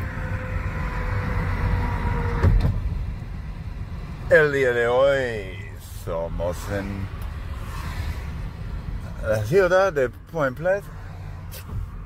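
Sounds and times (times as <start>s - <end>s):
car cabin road rumble: 0.0s - 12.0s
thump: 2.4s - 2.9s.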